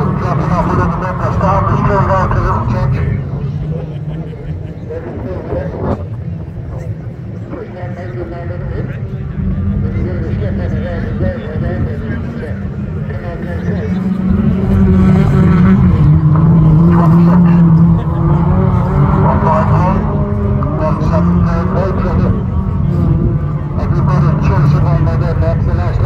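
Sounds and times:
racing car engines revving: 0:00.0 - 0:26.0.

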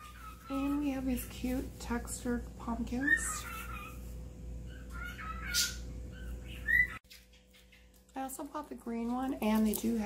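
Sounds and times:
pet bird chirping and whistling: 0:04.7 - 0:07.9.

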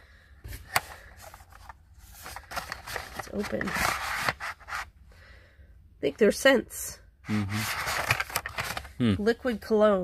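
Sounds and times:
paperboard box clicks and rustles: 0:00.6 - 0:04.8, 0:07.6 - 0:08.9.

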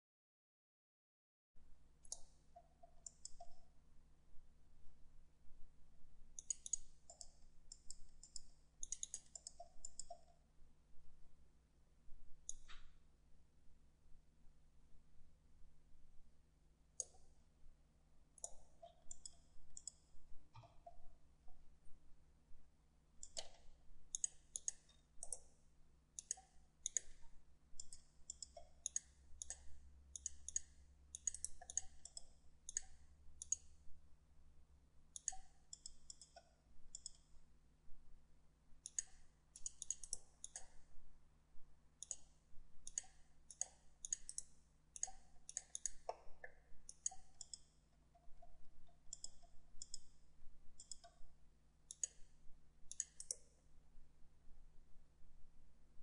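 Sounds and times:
faint low hum: 0:01.6 - 0:56.0
mouse and keyboard clicking: 0:02.1 - 0:03.6, 0:06.4 - 0:10.4, 0:18.4 - 0:20.0, 0:23.2 - 0:25.5, 0:27.8 - 0:33.7, 0:35.2 - 0:37.3, 0:38.8 - 0:40.9, 0:42.0 - 0:47.7, 0:48.9 - 0:50.1, 0:50.8 - 0:51.2, 0:51.9 - 0:52.3, 0:52.9 - 0:53.5.

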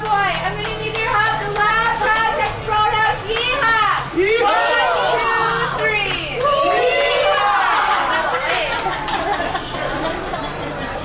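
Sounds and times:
overlapping voices in restaurant: 0:00.0 - 0:11.0.

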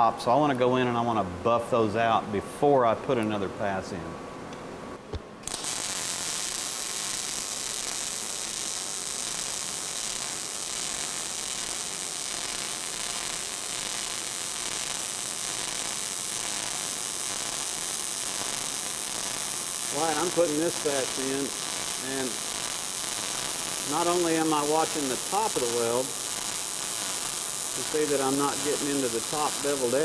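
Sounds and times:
welding arc frying crackle: 0:05.4 - 0:30.0.

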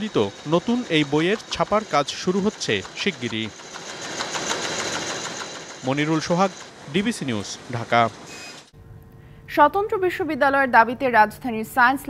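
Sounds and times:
man talking: 0:00.0 - 0:03.5, 0:05.8 - 0:08.2
printing press running: 0:00.0 - 0:08.7.

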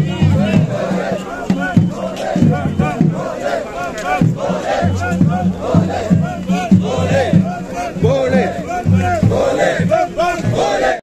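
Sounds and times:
crowd shouting chants: 0:00.0 - 0:11.0.

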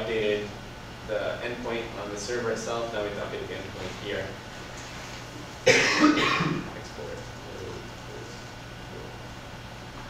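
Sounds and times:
steady low hum: 0:00.0 - 0:10.0
man clearing throat: 0:05.6 - 0:06.8.

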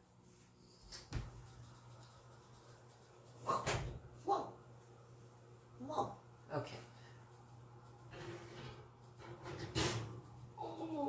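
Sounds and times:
oven door clunk: 0:08.2 - 0:10.2.

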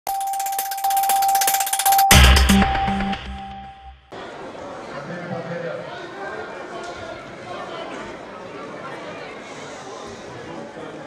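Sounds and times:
fast ticking shimmer: 0:00.1 - 0:03.9
steady high electronic tone: 0:00.1 - 0:04.1.

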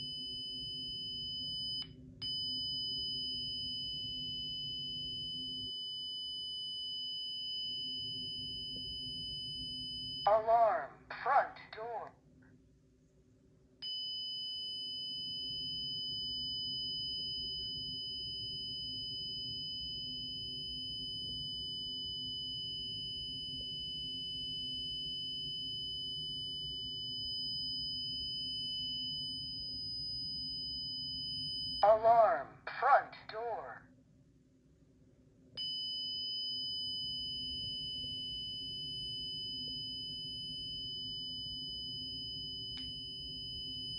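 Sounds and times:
high-pitched alarm siren tone: 0:00.0 - 0:10.9, 0:13.8 - 0:32.5, 0:35.6 - 0:43.9
voice announcement: 0:10.3 - 0:12.1, 0:31.8 - 0:33.8.

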